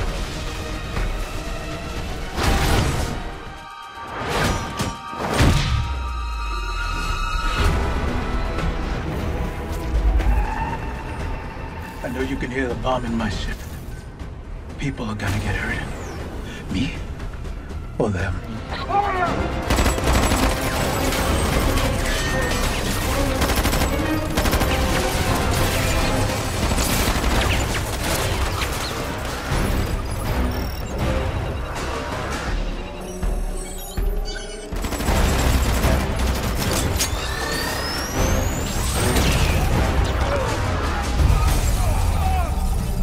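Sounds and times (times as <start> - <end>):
dramatic action score: 0.0 - 43.0.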